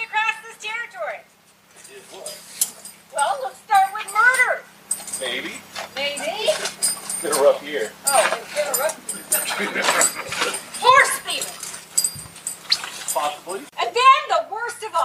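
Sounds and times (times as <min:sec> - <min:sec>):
people talking indistinctly: 0:00.0 - 0:12.4, 0:13.1 - 0:15.0.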